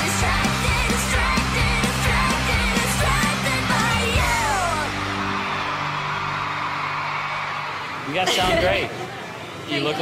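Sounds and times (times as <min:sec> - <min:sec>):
pop-rock band holding chord: 0:00.0 - 0:06.4
audience cheering and screaming: 0:00.0 - 0:09.6.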